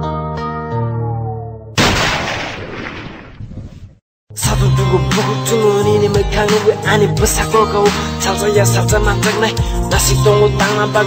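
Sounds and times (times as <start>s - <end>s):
explosion with rumbling tail: 1.8s - 4.0s.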